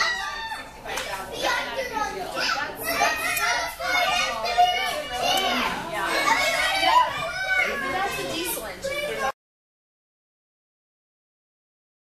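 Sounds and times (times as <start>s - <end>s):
children talking and calling out: 0.0s - 9.4s.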